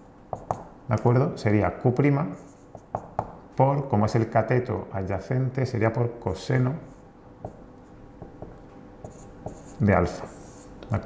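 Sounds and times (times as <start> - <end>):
marker writing on whiteboard: 0.0 - 0.7, 2.3 - 3.4, 6.7 - 11.0
marker tip tapping board: 0.3 - 0.7, 2.7 - 3.4.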